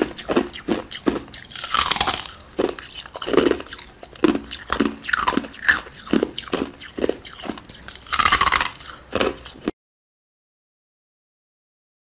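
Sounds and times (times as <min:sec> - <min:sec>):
teeth crunching ice: 0:00.0 - 0:09.7.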